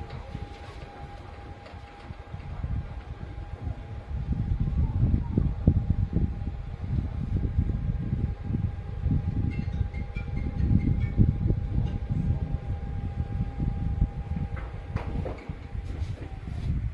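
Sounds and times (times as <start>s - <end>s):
loud uneven low rumble: 0.0s - 16.9s
motor humming: 0.0s - 16.9s.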